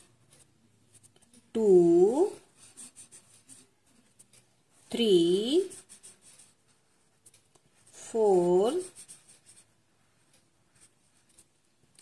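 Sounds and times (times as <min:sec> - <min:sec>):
marker scratching on paper: 0:00.0 - 0:12.0
person speaking: 0:01.2 - 0:06.6, 0:07.8 - 0:09.7.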